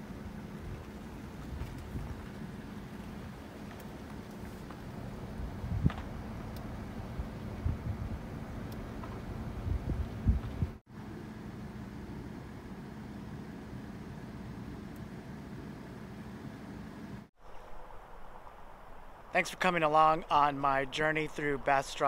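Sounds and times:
low outdoor hum: 0:00.0 - 0:22.0.

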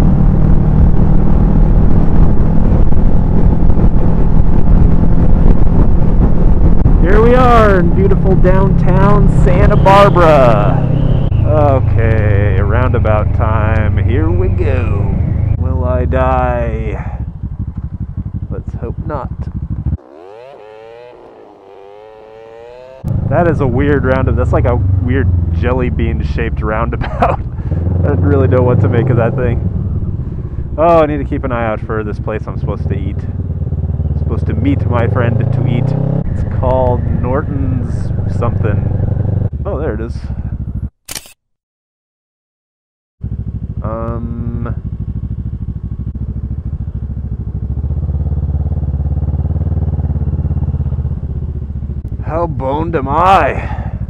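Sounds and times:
motorcycle engine running: 0:00.0 - 0:40.9, 0:43.2 - 0:54.0.

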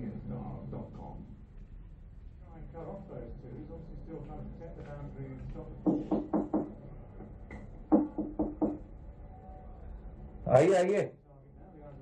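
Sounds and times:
knocking on wooden door: 0:05.8 - 0:08.8.

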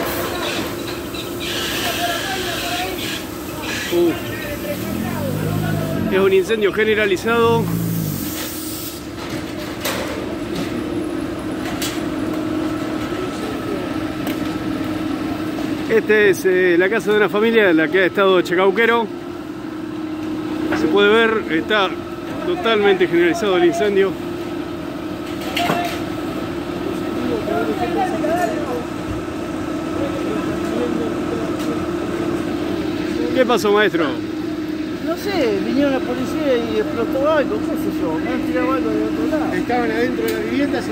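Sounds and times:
distant voices calling: 0:03.0 - 0:08.5
truck engine humming: 0:03.2 - 0:08.7.

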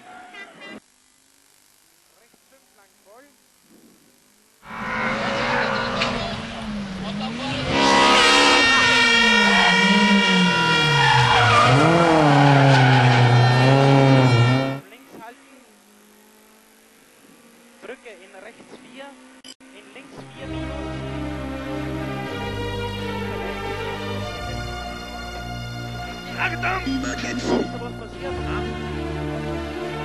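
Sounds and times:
rally car engine revving: 0:04.6 - 0:24.5
tyres squealing: 0:07.6 - 0:14.8.

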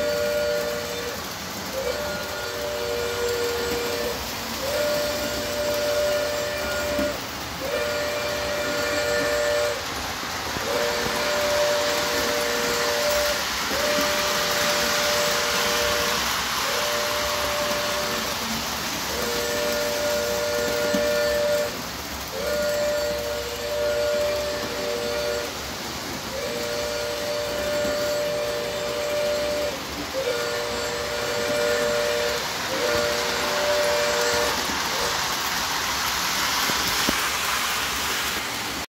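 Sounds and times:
two-note train whistle: 0:00.0 - 0:38.4
model trains rumbling on track: 0:00.0 - 0:38.9.

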